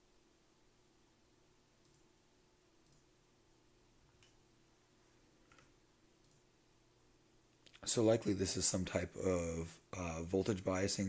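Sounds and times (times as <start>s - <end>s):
faint steady hum: 0.0s - 11.0s
computer mouse click: 1.8s - 2.0s, 2.8s - 3.0s, 5.5s - 6.4s
man speaking: 7.8s - 11.0s.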